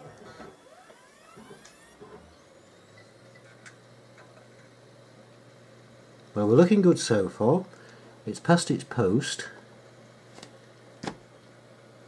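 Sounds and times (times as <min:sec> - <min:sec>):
computer fans whirring: 0:00.0 - 0:12.0.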